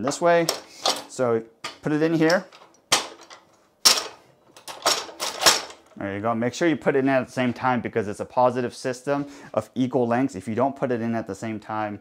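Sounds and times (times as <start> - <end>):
metallic clicks and rattles: 0.0 - 6.0.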